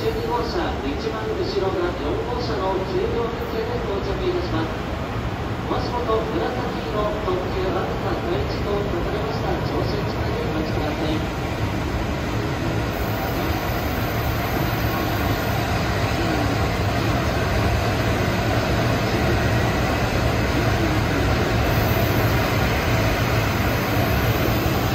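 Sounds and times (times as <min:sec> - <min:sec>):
electric locomotive rolling past: 0:00.0 - 0:24.9.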